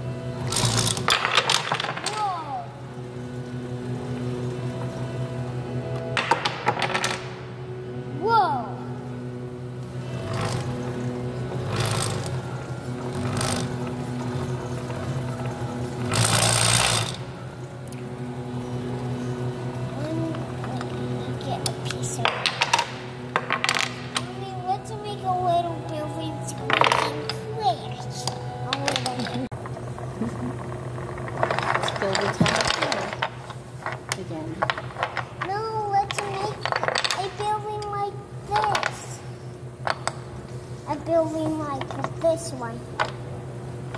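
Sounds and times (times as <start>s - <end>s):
steady low hum: 0.0s - 43.9s
wooden blocks clacking: 0.6s - 2.3s, 6.2s - 7.4s, 22.2s - 24.3s, 26.7s - 27.4s, 30.6s - 37.4s.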